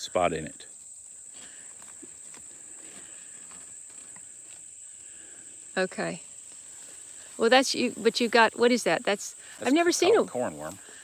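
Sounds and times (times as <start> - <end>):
insects chorus: 0.0 - 11.0.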